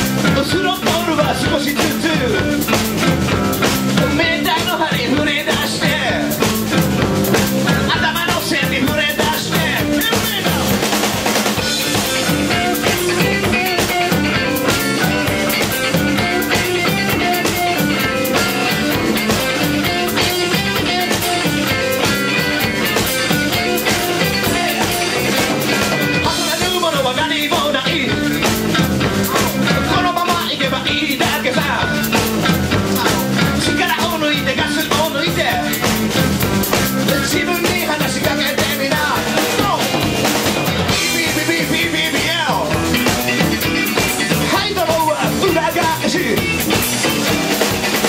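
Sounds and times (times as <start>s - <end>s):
bass guitar: 0.0s - 48.0s
drum kit steady beat: 0.0s - 48.0s
electric guitars: 0.0s - 48.0s
repeating guitar note run: 11.6s - 26.5s.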